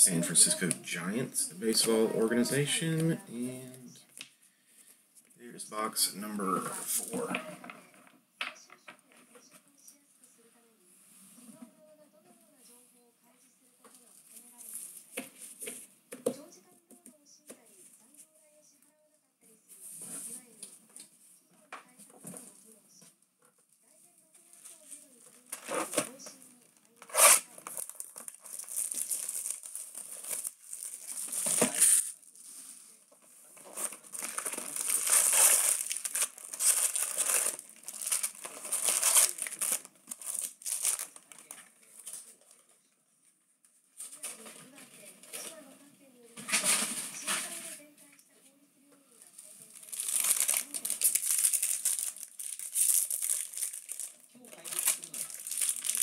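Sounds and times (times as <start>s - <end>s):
foil card packs crinkling: 27.1s - 32.4s, 33.6s - 41.6s, 49.6s - 56.0s.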